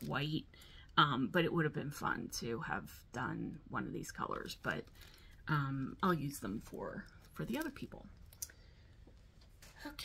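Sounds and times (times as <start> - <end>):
person speaking: 0.0 - 8.5.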